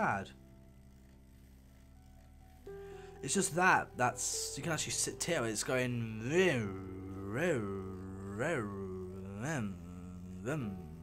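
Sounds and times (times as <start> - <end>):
model locomotive motor humming: 0.0 - 3.2.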